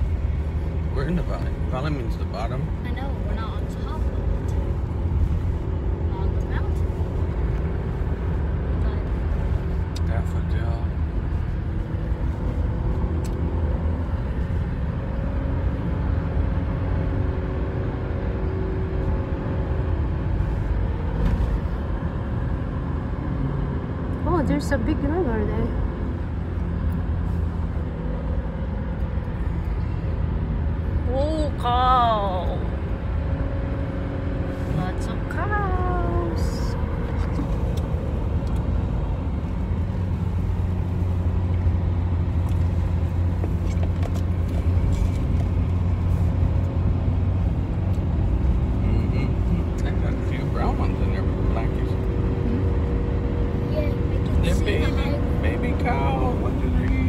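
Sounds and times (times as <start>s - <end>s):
car road noise and engine hum: 0.0s - 57.0s.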